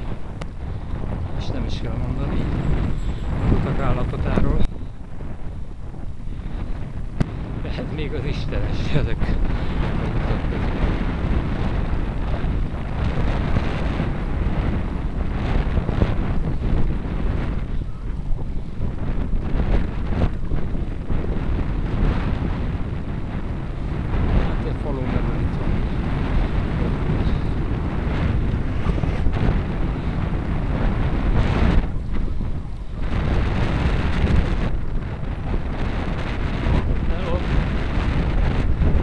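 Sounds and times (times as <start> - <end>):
wind buffeting microphone: 0.0 - 39.0.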